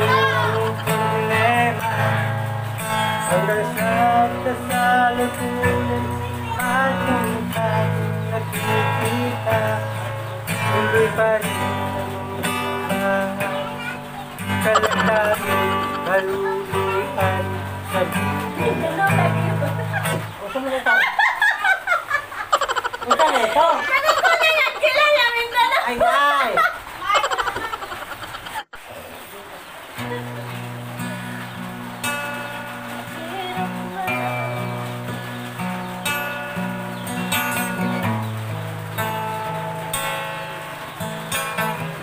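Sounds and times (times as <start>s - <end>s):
acoustic guitar playing: 0.0s - 28.9s, 29.6s - 42.0s
woman laughing hard: 14.6s - 16.6s, 19.3s - 28.8s.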